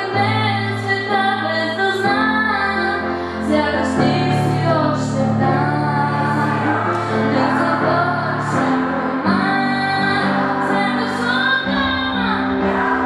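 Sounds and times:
instrumental backing music: 0.0s - 13.0s
young woman singing: 0.0s - 13.0s.

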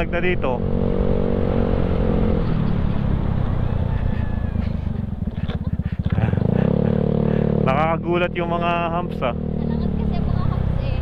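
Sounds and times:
scooter engine running: 0.7s - 11.0s.

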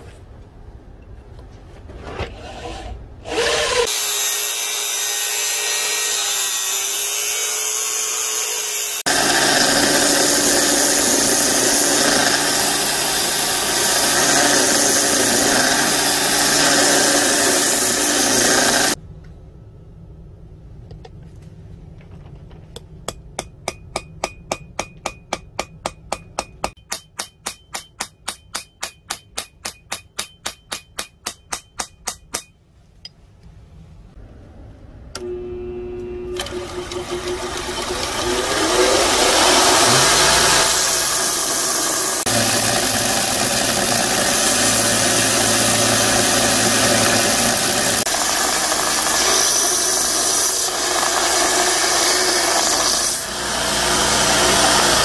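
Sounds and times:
belt grinder grinding steel rod: 2.4s - 19.0s, 36.3s - 55.0s
drill press boring steel: 2.4s - 19.0s, 36.4s - 55.0s
hammer striking on anvil: 22.8s - 32.6s.

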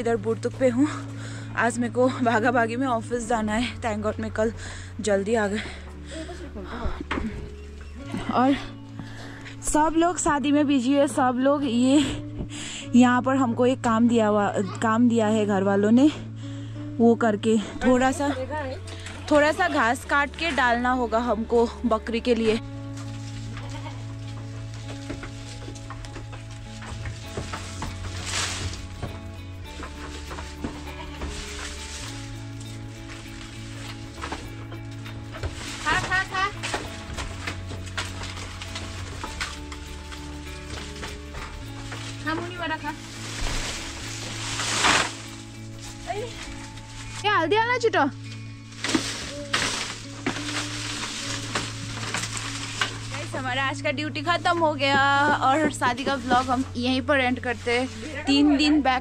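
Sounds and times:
woman speaking: 0.0s - 1.0s, 1.6s - 6.9s, 12.9s - 16.2s, 17.0s - 22.6s, 35.8s - 36.6s, 42.2s - 43.0s, 53.1s - 59.0s
background music: 0.0s - 59.0s
leafy fodder rustling and crackling: 17.3s - 59.0s.

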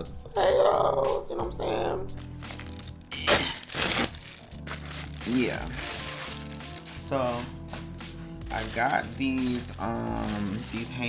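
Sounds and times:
background music: 0.0s - 11.0s
plastic packaging crinkling: 2.2s - 7.8s, 8.5s - 11.0s.

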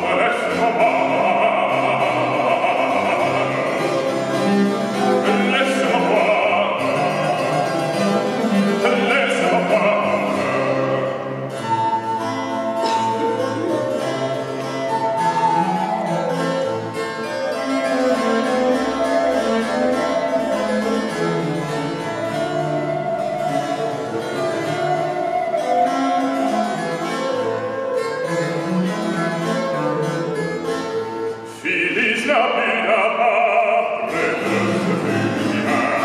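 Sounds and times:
plucked harpsichord chords: 0.0s - 36.0s
wooden flute melody: 0.0s - 36.0s
viola da gamba bass line: 33.3s - 36.0s.

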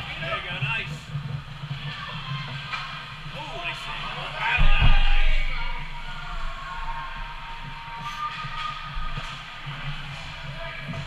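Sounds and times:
distant sounds of ice play: 0.0s - 11.0s.

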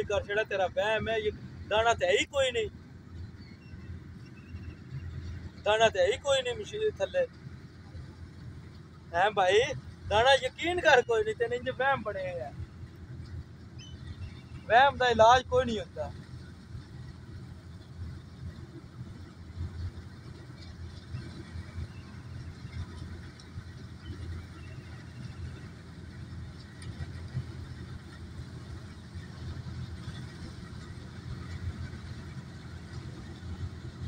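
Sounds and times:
distant combine harvester rumble: 0.0s - 34.0s.

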